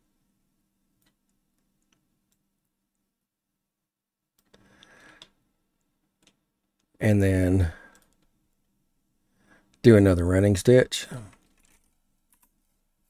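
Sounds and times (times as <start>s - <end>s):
faint room hum: 0.0s - 13.0s
computer mouse clicks: 11.3s - 12.6s.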